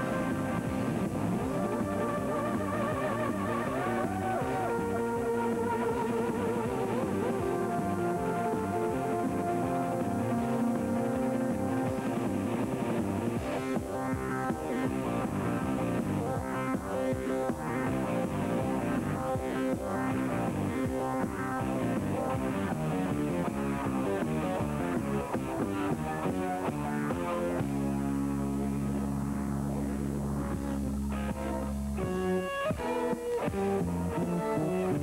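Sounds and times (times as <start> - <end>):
bass: 0.0 - 35.0
electric guitar melody: 0.0 - 35.0.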